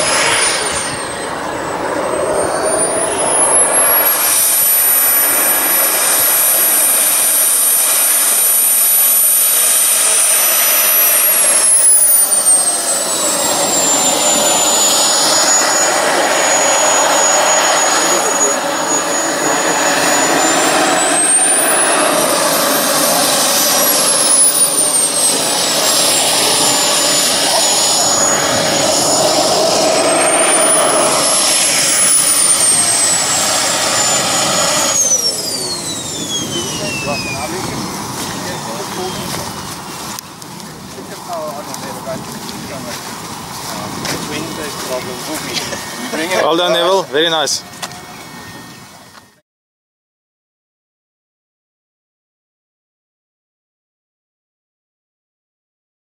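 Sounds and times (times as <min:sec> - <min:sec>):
jet turbine high whine: 0:00.0 - 0:49.4.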